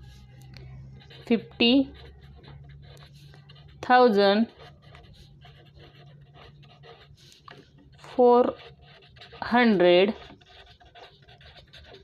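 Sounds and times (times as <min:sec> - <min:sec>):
low steady hum: 0:00.0 - 0:12.0
pen scratching on paper: 0:00.0 - 0:12.0.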